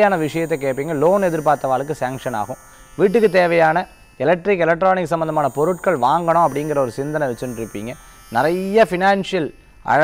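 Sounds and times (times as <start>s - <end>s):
man speaking: 0.0s - 10.0s
steady electrical hum: 0.0s - 10.0s.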